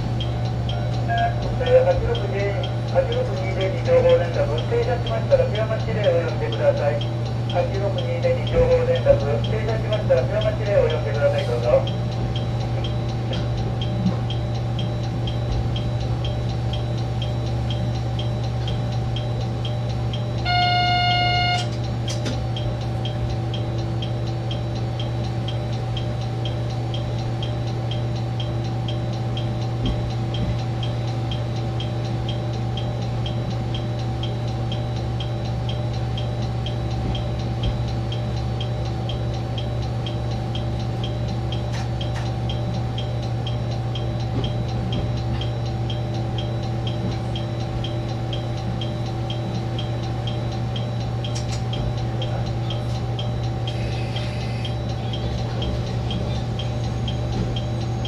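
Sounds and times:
diesel railcar engine drone: 0.0 - 58.0
fast even ticking: 0.0 - 58.0
loud high tone: 20.4 - 21.8, 53.7 - 54.8.

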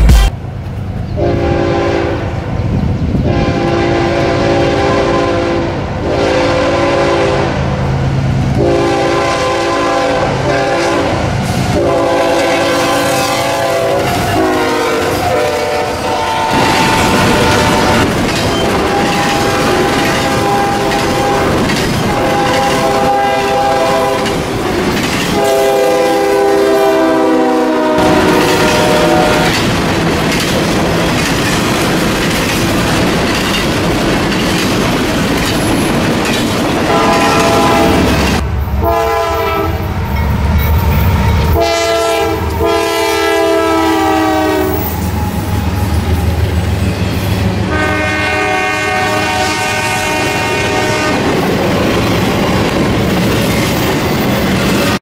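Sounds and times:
heavy low rumble: 0.0 - 0.3
freight train rumble and wheel clatter: 0.0 - 55.0
diesel locomotive horn blasts: 1.1 - 2.4, 3.2 - 7.6, 8.5 - 24.5, 25.3 - 29.6, 36.8 - 46.2, 47.6 - 51.4.

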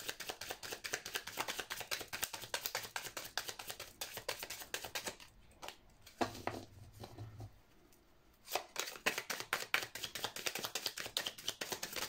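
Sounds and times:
cards being shuffled: 0.0 - 5.8, 8.5 - 12.0.

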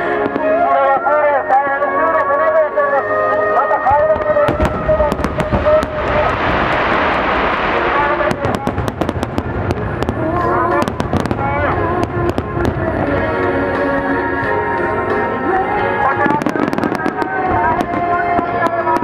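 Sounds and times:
fireworks bursting: 4.0 - 15.3, 15.9 - 19.0
firework crackle: 4.1 - 14.6, 16.2 - 19.0
woman singing over slow music: 9.9 - 19.0.

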